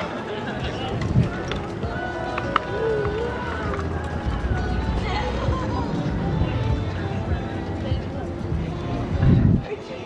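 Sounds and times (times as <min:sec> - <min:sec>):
faint distant voices: 0:00.0 - 0:10.0
wind rumbling on microphone: 0:00.6 - 0:09.7.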